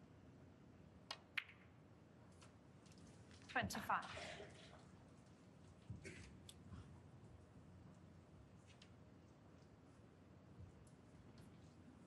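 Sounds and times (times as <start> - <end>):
snooker balls clicking: 1.1 - 1.7.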